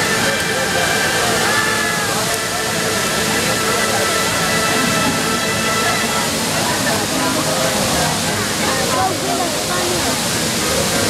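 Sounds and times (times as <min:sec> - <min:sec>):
crowd talking: 0:00.0 - 0:11.0
fountain water jets rushing: 0:00.0 - 0:11.0.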